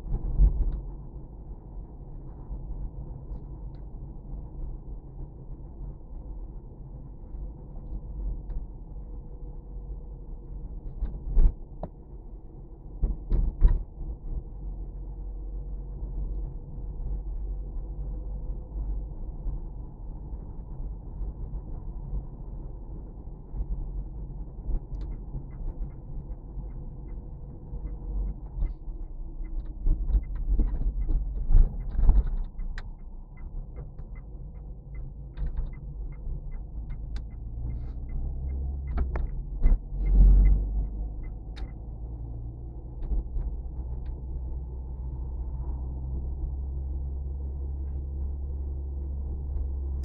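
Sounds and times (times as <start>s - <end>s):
car engine and tyres rumbling: 0.0s - 50.0s
turn signal relay ticking: 24.9s - 42.1s.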